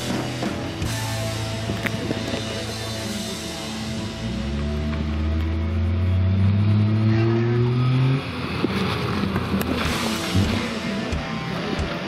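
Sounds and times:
small car engine revving: 0:03.6 - 0:12.0.

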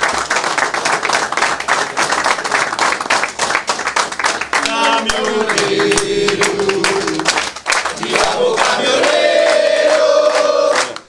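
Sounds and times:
rhythmic clapping: 0:00.0 - 0:11.0
men chanting together: 0:04.6 - 0:11.0.

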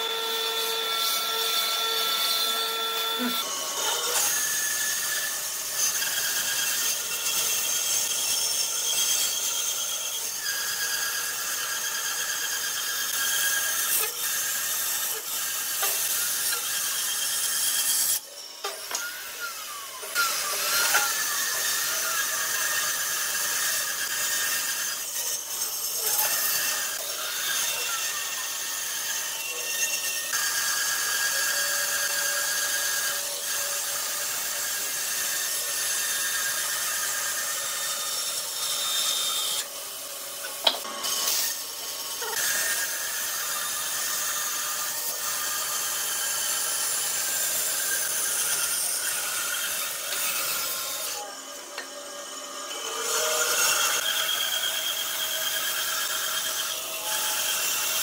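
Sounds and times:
bandsaw cutting wood: 0:00.0 - 0:58.0.

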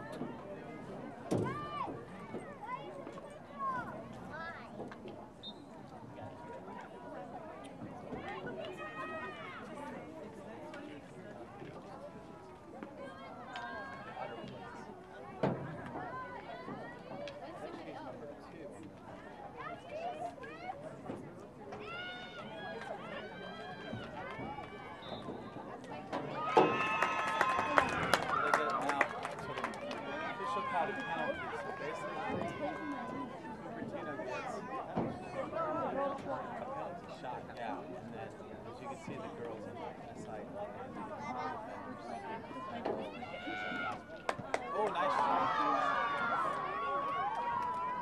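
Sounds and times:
players and spectators calling out: 0:21.7 - 0:36.7, 0:41.1 - 0:48.0
crowd cheering: 0:26.2 - 0:33.2, 0:42.6 - 0:48.0.

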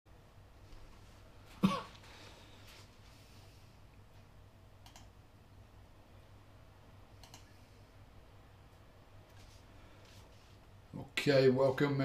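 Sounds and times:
faint low room hum: 0:00.1 - 0:12.0
person coughing: 0:01.6 - 0:02.0.

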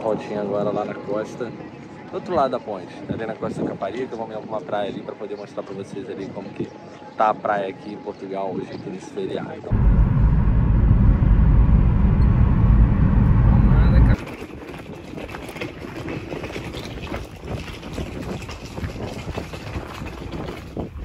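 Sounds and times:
car rumble from inside cabin: 0:09.7 - 0:14.2
wind hiss on microphone: 0:16.5 - 0:21.0.

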